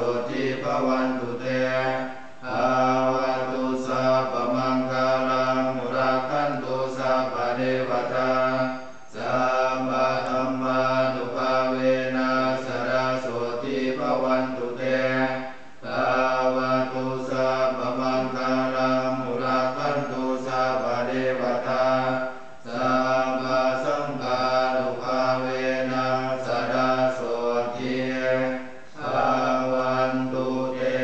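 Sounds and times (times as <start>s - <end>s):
monks chanting in unison: 0.0s - 31.0s.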